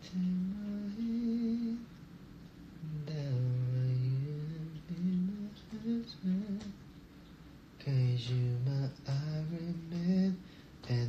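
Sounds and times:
man humming a tune: 0:00.0 - 0:01.9, 0:02.8 - 0:06.8.

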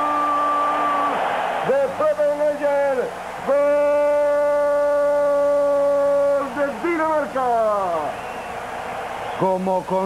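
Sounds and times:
male commentator shouting: 0:00.0 - 0:08.1.

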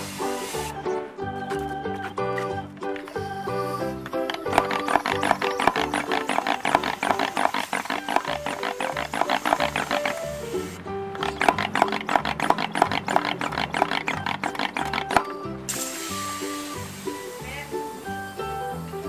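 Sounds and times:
upbeat music with stepping bass: 0:00.0 - 0:19.0.

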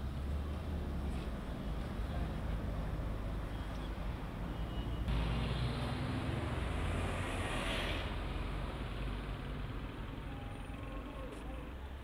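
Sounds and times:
vehicle engines rumbling: 0:00.0 - 0:12.0
vehicle passing close: 0:05.1 - 0:09.8.

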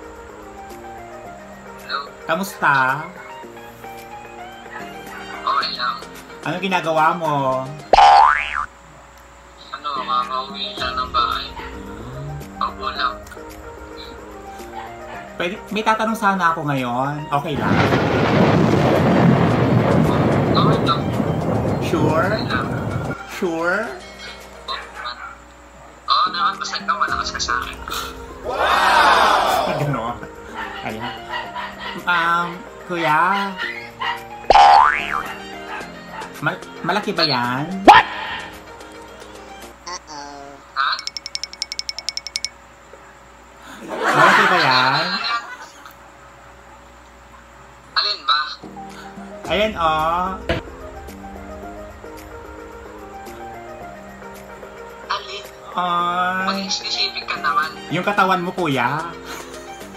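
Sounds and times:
background music: 0:00.0 - 0:08.7, 0:09.8 - 0:25.3, 0:26.1 - 0:39.9, 0:48.6 - 0:59.9
cartoon boing: 0:08.0 - 0:08.7, 0:34.5 - 0:35.4.

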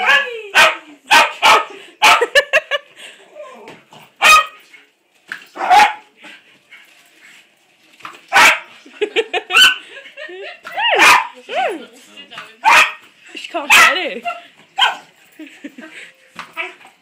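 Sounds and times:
small dog barking: 0:00.0 - 0:02.3, 0:04.2 - 0:04.6, 0:05.6 - 0:06.1, 0:08.3 - 0:08.7, 0:09.5 - 0:09.8, 0:10.8 - 0:11.4, 0:12.6 - 0:13.0, 0:13.7 - 0:15.1.

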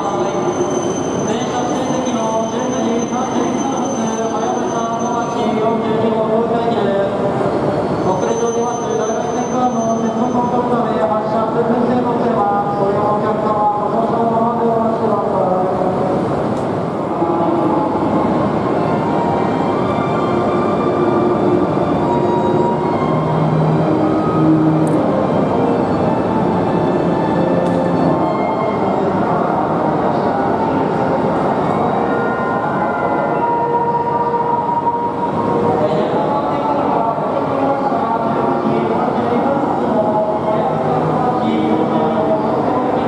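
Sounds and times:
high-speed trains running: 0:00.0 - 0:43.0.

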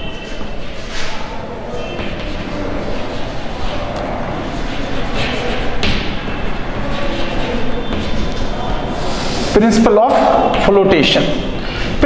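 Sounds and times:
chalk scratching on blackboard: 0:00.0 - 0:09.6
rumbling room noise: 0:00.0 - 0:11.0.

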